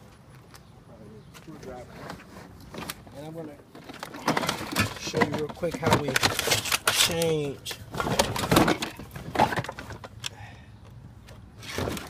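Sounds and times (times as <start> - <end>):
objects rattling in plastic bin: 3.8 - 7.2, 7.9 - 10.1.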